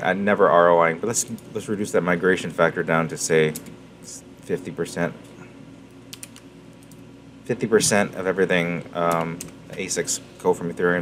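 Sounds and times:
low steady hum: 0.0s - 11.0s
computer keyboard keystrokes: 6.1s - 7.0s, 9.1s - 9.8s.

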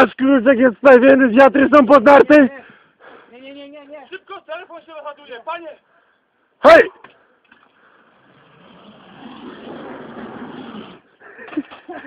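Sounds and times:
shoes sliding on plastic track: 8.0s - 11.7s.

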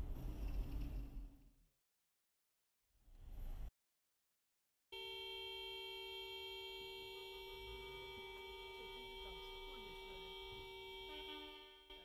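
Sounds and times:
car horn long blast: 5.0s - 12.0s.

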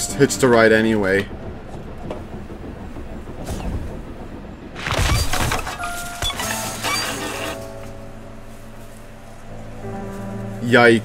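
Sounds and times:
low rumble: 0.0s - 11.0s
clatter: 0.2s - 7.8s
loud crash: 3.3s - 7.9s
music with held notes: 5.8s - 11.0s.

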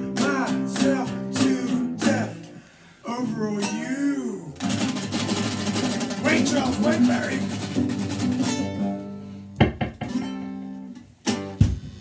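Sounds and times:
classical guitar chords: 0.0s - 2.6s, 3.5s - 11.7s.

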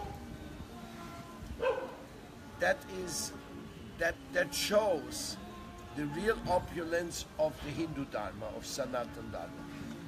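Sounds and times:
faint steady background tones: 0.0s - 10.0s
dog barking: 1.6s - 2.0s.

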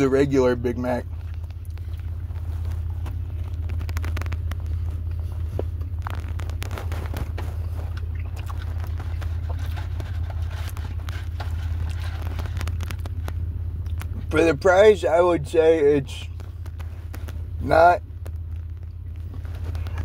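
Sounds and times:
steady low hum: 0.0s - 20.0s
chewing with mouth clicks: 1.0s - 14.2s.

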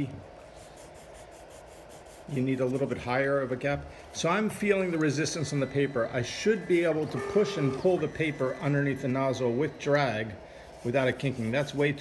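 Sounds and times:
paper scraping under printer nozzle: 4.7s - 12.0s.

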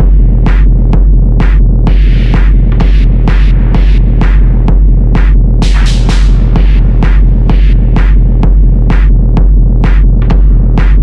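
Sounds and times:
dense synth layer: 0.0s - 11.0s
heavy bass throb: 0.0s - 11.0s.

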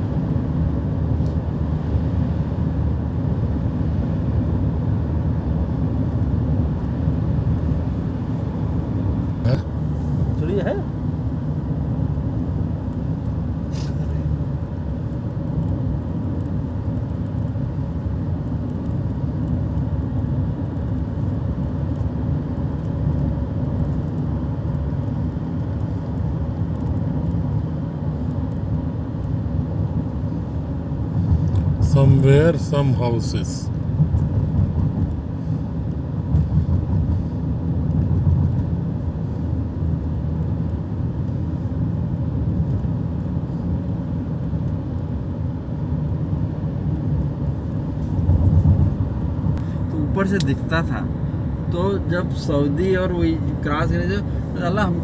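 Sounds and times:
road and engine rumble in cabin: 0.0s - 55.0s.

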